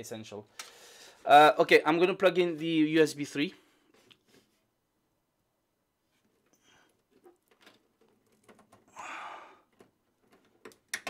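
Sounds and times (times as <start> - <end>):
breathy exhale: 0.6 - 1.2, 8.9 - 9.7
cable clicks and scrapes: 6.1 - 9.0.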